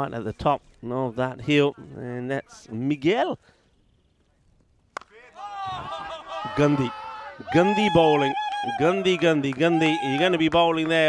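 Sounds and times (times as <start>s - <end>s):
cricket bat striking ball: 4.9s - 5.2s.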